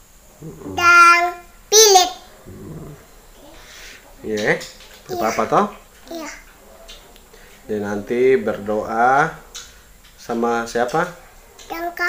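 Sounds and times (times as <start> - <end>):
man humming: 0.4 - 0.9, 2.5 - 3.0
girl's high-pitched voice: 0.8 - 2.2, 6.1 - 6.4, 11.7 - 12.0.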